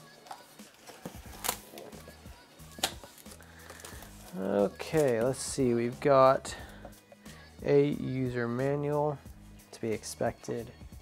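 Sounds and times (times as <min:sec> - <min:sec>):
soft background music: 0:00.0 - 0:11.0
cardboard crackling: 0:00.2 - 0:02.2.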